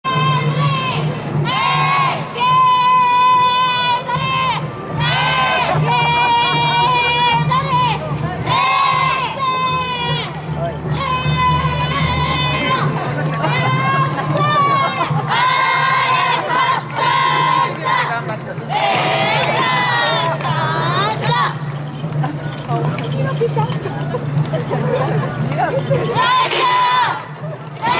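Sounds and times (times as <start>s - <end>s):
crowd noise: 0.0s - 27.9s
children chanting shouted calls: 0.1s - 10.3s, 10.9s - 21.6s, 26.1s - 27.9s.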